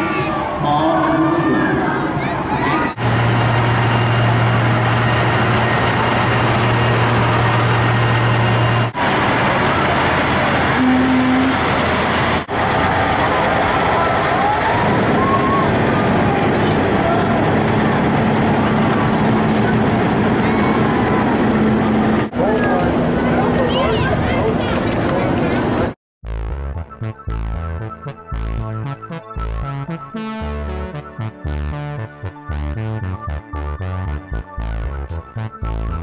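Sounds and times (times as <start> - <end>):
crowd voices: 0.0 - 11.6, 12.4 - 26.0
harvester engine drone: 0.0 - 26.0
truck driving past: 2.9 - 24.6.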